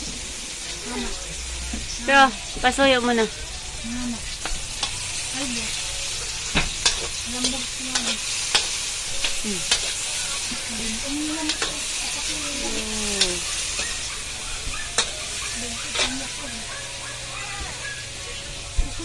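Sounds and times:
vegetables sizzling in oil: 0:00.0 - 0:19.0
metal spatula striking wok: 0:06.5 - 0:10.1, 0:11.4 - 0:11.8, 0:14.8 - 0:16.4.

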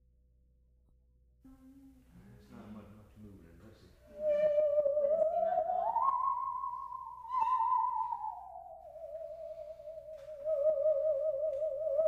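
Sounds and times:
bowed musical saw melody: 0:04.1 - 0:12.0.

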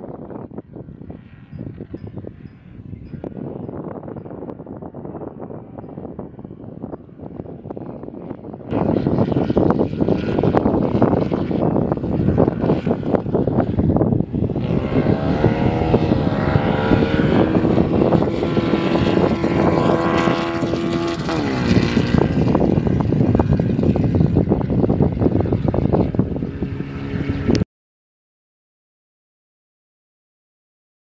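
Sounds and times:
race car engine running hard: 0:04.4 - 0:27.6.

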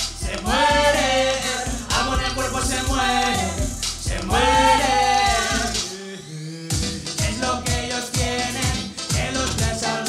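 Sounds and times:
urban pop music: 0:00.0 - 0:10.0
woman singing: 0:01.7 - 0:06.1.

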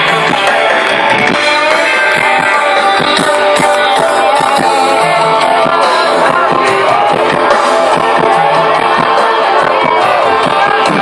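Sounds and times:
steady drum beat: 0:00.0 - 0:11.0.

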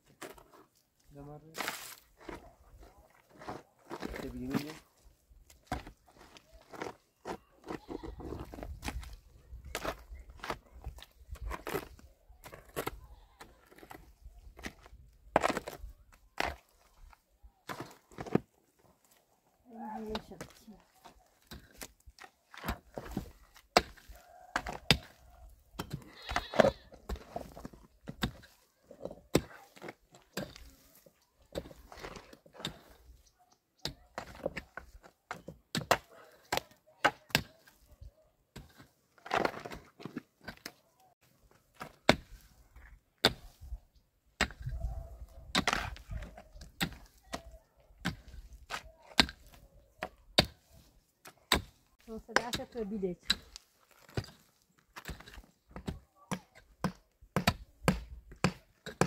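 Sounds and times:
shovel and pick digging: 0:00.0 - 0:43.8, 0:44.4 - 0:59.0.

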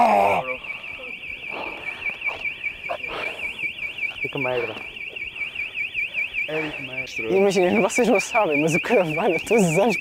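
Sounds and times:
car alarm siren warbling: 0:00.0 - 0:10.0.

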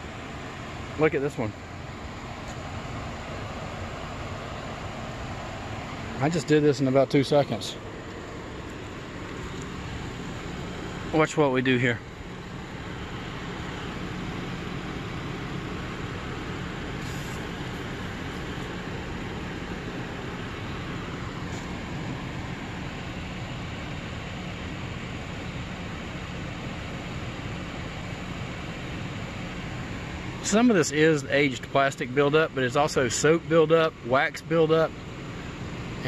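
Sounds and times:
low mechanical hum: 0:00.0 - 0:36.0.

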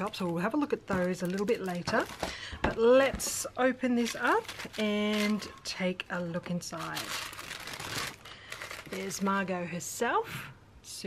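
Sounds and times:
tissue paper rustling: 0:03.9 - 0:05.5, 0:06.4 - 0:09.4.

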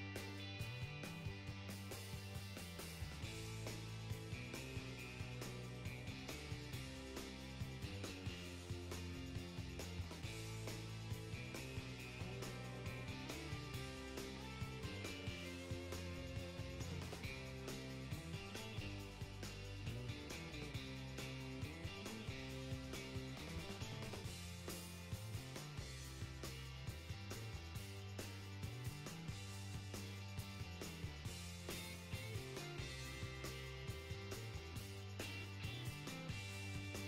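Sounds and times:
music with steady beat: 0:00.0 - 0:37.0.

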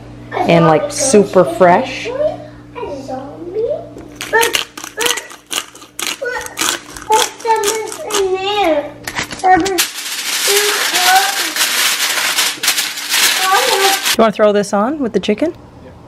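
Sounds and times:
aluminium foil crinkling: 0:04.1 - 0:08.4, 0:09.0 - 0:14.2.

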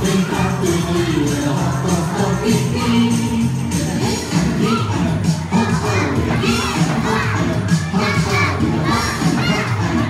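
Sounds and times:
backing music with bass line: 0:00.0 - 0:10.0
children shouting and singing: 0:00.0 - 0:10.0.

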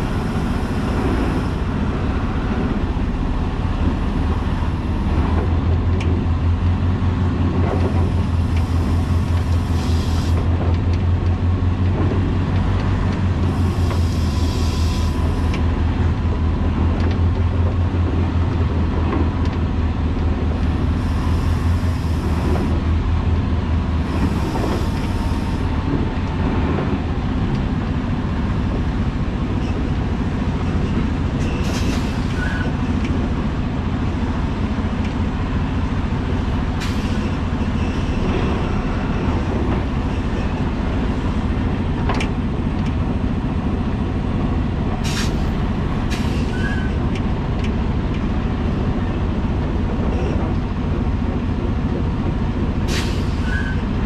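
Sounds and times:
diesel truck engine rumbling: 0:00.0 - 0:54.0
short air hisses: 0:13.6 - 0:15.5, 0:36.8 - 0:37.4, 0:45.0 - 0:45.5, 0:46.1 - 0:46.8, 0:52.9 - 0:53.7.

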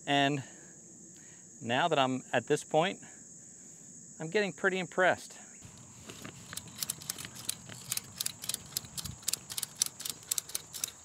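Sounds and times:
ratchet strap clicking: 0:05.7 - 0:11.0.

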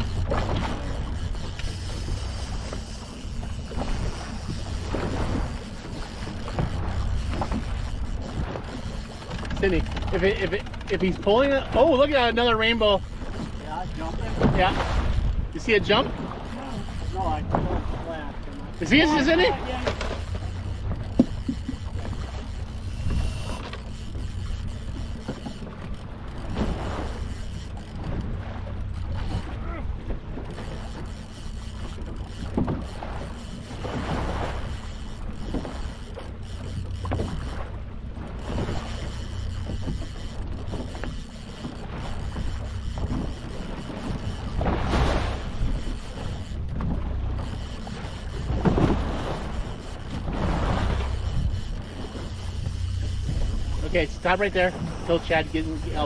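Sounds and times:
outboard motor running: 0:00.0 - 0:56.0
waves against hull: 0:00.0 - 0:56.0
wind: 0:00.0 - 0:56.0.

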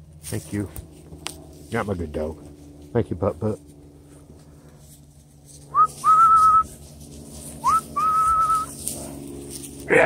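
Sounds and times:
person whistling: 0:05.7 - 0:06.6, 0:07.6 - 0:08.7.

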